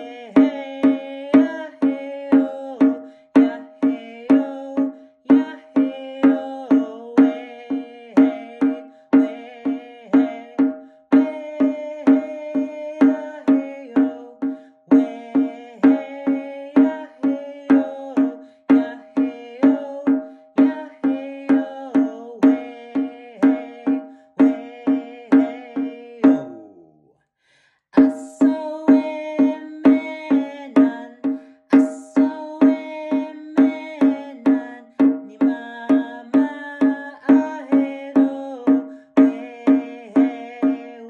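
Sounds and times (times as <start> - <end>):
hand drum beating: 0.0 - 26.7, 28.0 - 41.0
man singing: 0.0 - 27.1, 28.0 - 41.0.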